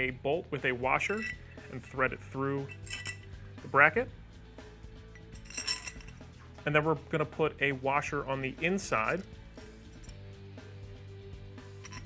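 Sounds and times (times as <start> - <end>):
bolt clinking against metal bracket: 1.0 - 3.2, 5.2 - 6.2, 11.8 - 12.0.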